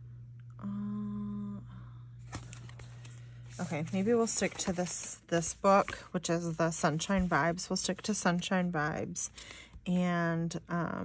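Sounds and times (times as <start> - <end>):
woman humming hmm: 0.0 - 2.3
paper book rustling: 2.2 - 8.6.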